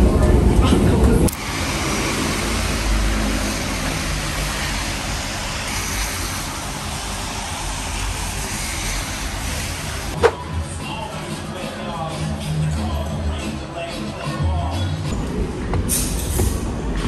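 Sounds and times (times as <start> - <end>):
road traffic: 0.0 - 17.0
heavy rain on street: 1.4 - 10.2.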